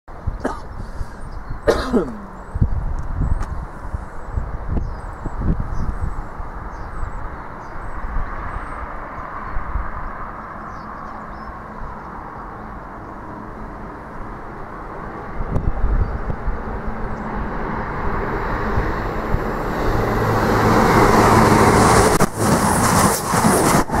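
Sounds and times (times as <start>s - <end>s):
person coughing: 0.4s - 0.7s, 1.7s - 2.4s
passenger train passing at speed: 0.4s - 24.0s.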